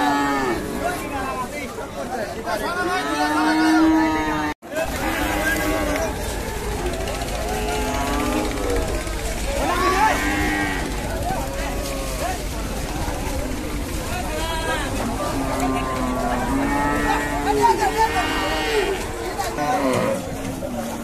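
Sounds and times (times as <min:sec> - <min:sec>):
cattle mooing: 0:00.0 - 0:01.0, 0:03.0 - 0:12.3, 0:14.6 - 0:21.0
men shouting and chatting: 0:00.0 - 0:21.0.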